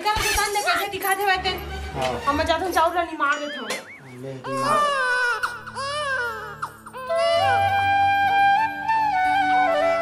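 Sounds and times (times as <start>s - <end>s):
background music: 0.0s - 10.0s
infant crying: 4.3s - 7.9s.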